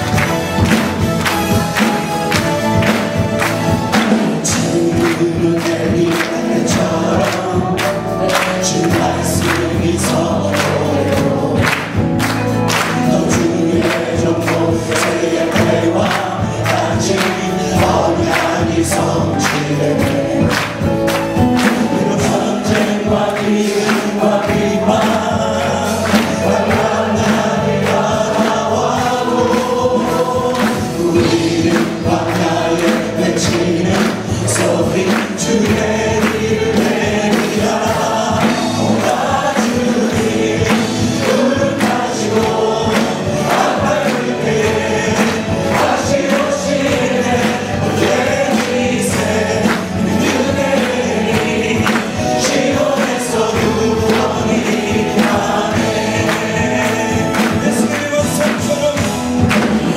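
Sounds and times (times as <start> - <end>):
instrumental backing: 0.0 - 59.9
men and women singing praise song: 0.0 - 59.9.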